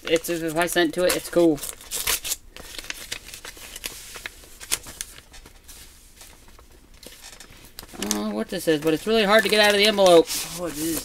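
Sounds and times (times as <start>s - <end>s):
paper rustling and crinkling: 0.0s - 11.0s.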